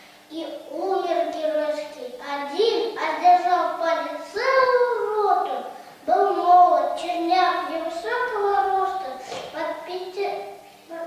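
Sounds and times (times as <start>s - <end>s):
boy reciting a poem: 0.0s - 11.0s.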